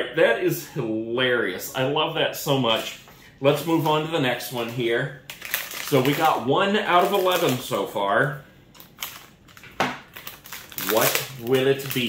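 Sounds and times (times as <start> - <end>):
foil wrapper crinkling: 3.6 - 12.0.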